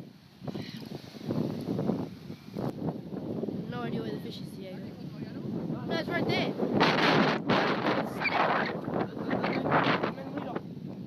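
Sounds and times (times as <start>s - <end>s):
wind buffeting microphone: 0.0s - 11.0s
small waves breaking on shore: 0.1s - 10.7s.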